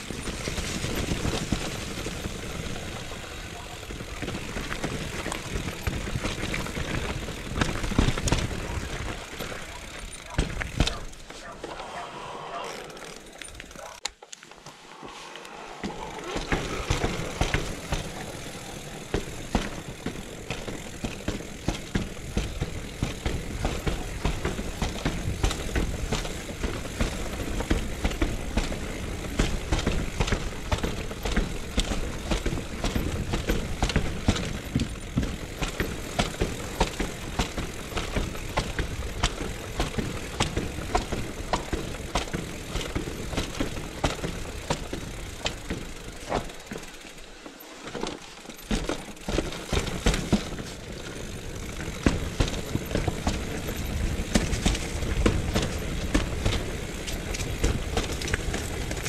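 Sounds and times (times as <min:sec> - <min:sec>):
bike rattling: 0:00.0 - 0:14.5, 0:15.3 - 0:59.0
bike tyres rumbling on cobbles: 0:00.0 - 0:59.0.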